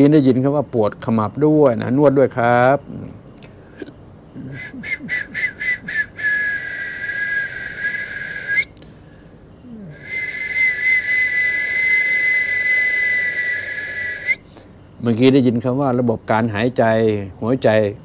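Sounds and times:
high whistle blasts: 4.4s - 8.7s, 10.0s - 14.4s.

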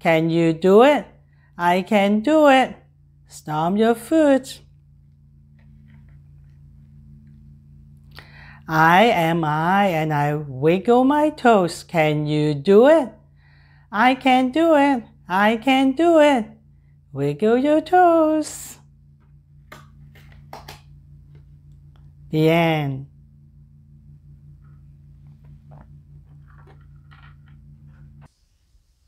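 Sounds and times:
low steady hum: 0.0s - 29.0s
book page turning: 25.2s - 28.4s.

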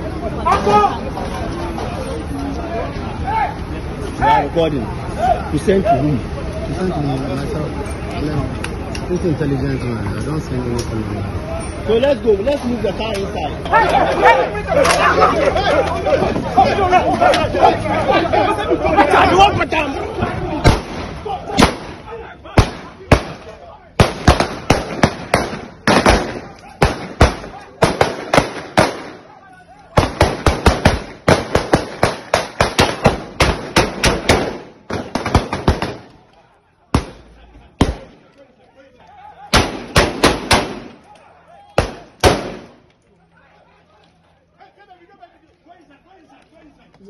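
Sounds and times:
people shouting: 0.0s - 1.2s, 2.7s - 6.3s, 13.4s - 47.0s
sharp loud cracks: 20.6s - 29.3s, 30.0s - 36.2s, 39.5s - 41.1s, 41.8s - 42.8s.

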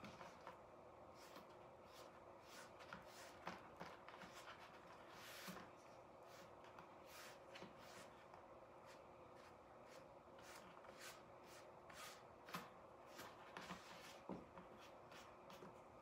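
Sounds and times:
paintbrush scratching on canvas: 1.1s - 15.7s.

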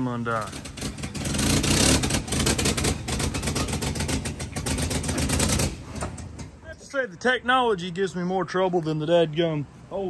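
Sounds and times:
truck engine running: 0.0s - 6.6s.

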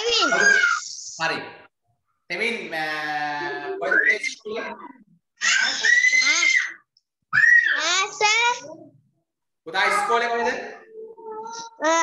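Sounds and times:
child shrieking: 0.1s - 1.0s, 5.4s - 8.0s.

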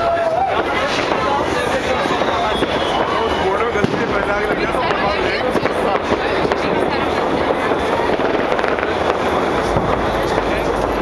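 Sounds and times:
fireworks crackling: 0.0s - 11.0s.

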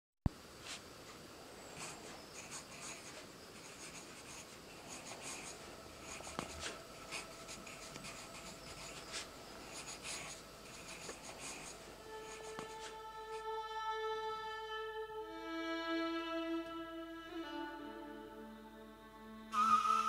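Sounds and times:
pencil writing on paper: 1.8s - 12.9s.

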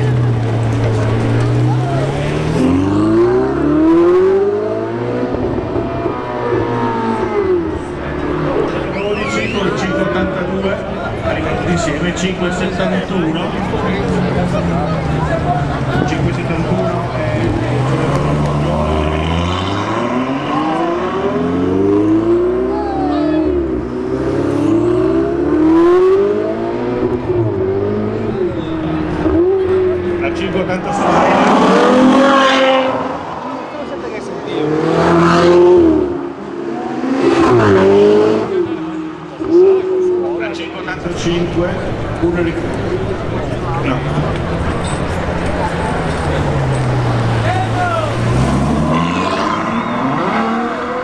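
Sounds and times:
sports cars accelerating hard: 0.0s - 51.0s.

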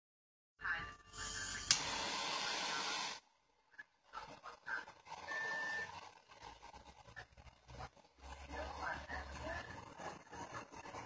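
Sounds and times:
butane torch hissing: 1.1s - 3.3s.

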